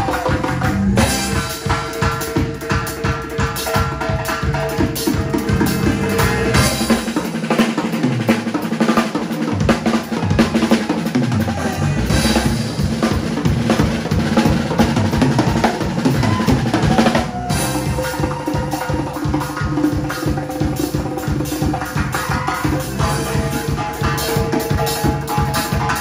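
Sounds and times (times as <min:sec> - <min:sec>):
drum kit playing fast rhythm: 0:00.0 - 0:26.0
frame drum: 0:00.0 - 0:26.0.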